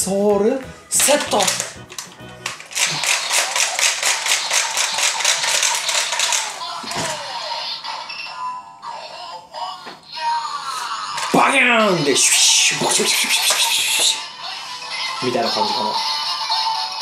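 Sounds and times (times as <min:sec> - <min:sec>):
toy gun electronic music and effects: 0:01.0 - 0:08.4, 0:12.8 - 0:14.0.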